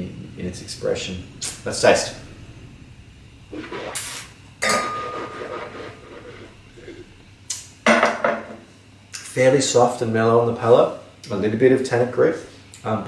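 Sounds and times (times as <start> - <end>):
slurping wine with sucking hiss: 3.5 - 4.3
glass clinking: 4.6 - 5.1.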